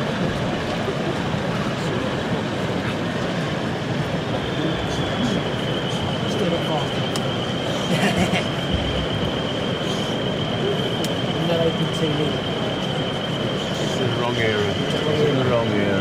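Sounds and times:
crowd chatter: 0.0s - 16.0s
model train high whine: 0.0s - 16.0s.

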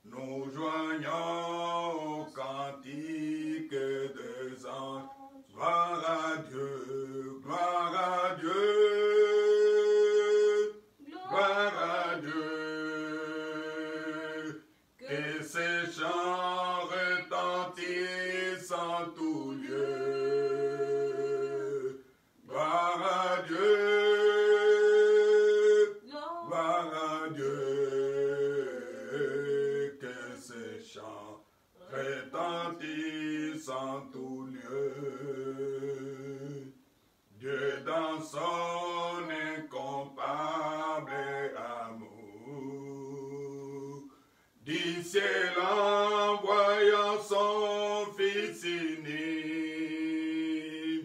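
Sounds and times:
man singing a hymn unaccompanied: 0.0s - 51.0s.

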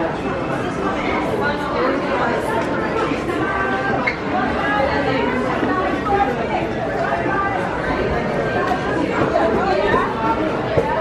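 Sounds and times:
chatter of many shoppers: 0.0s - 11.0s.

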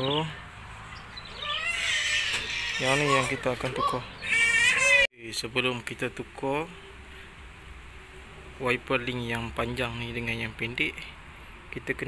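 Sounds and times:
high-pitched animal cry: 1.3s - 5.1s.

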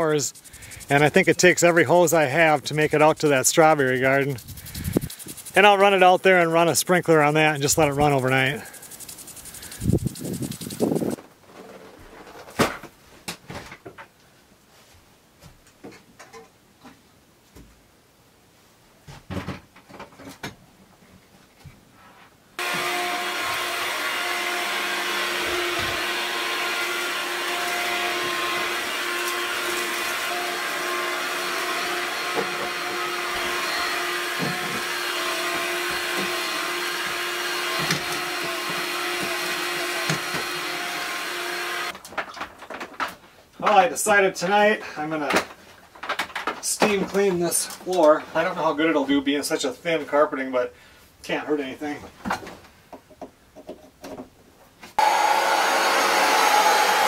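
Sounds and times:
knocks and clatter of objects: 19.1s - 20.6s, 42.0s - 43.3s, 45.3s - 47.2s
carpet cleaner running: 22.6s - 41.9s, 55.0s - 57.0s.

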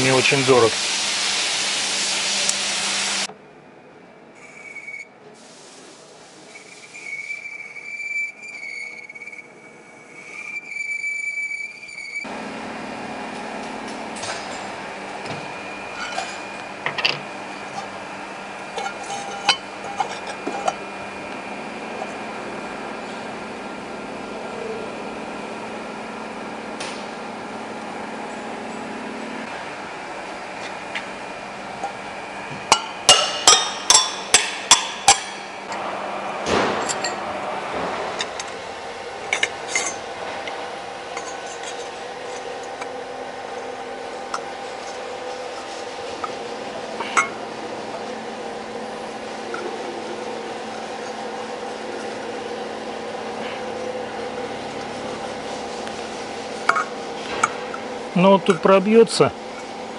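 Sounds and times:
metal lathe running: 0.0s - 3.3s, 6.6s - 59.9s.

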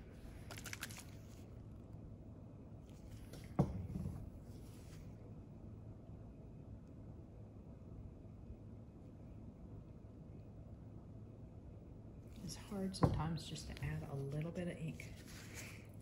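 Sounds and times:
low steady hum: 0.0s - 16.0s
soft rustle: 4.4s - 5.2s, 13.6s - 16.0s.

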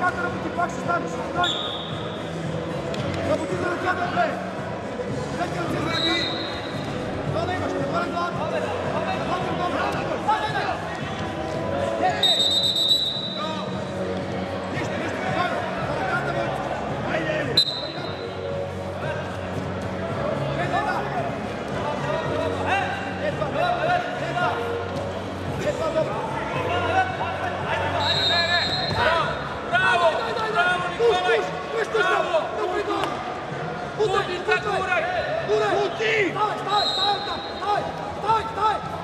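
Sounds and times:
voices calling out in hall: 0.0s - 39.0s
coaches and spectators shouting: 25.6s - 39.0s.

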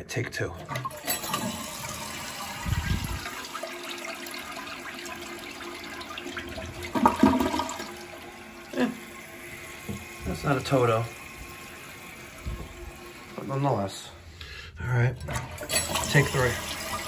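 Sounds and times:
toilet flushing: 0.4s - 17.0s
tank refilling: 0.5s - 13.8s, 15.2s - 17.0s.

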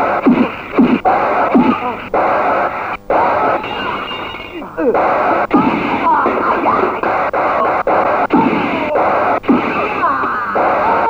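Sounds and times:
punch sound effects: 0.0s - 1.9s, 4.9s - 11.0s.

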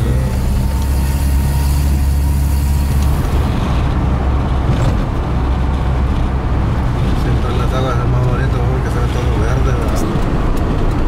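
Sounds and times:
road noise hiss: 0.0s - 10.8s
car engine rumble: 0.0s - 11.0s.

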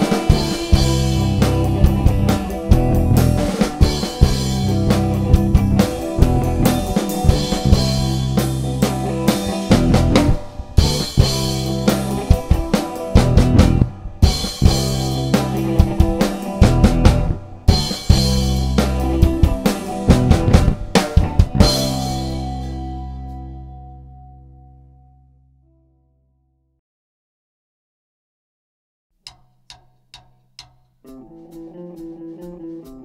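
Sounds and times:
drum kit beat: 0.0s - 23.5s, 29.3s - 33.0s
electric guitar: 0.0s - 25.8s, 31.1s - 33.0s
electric bass: 0.0s - 26.7s.

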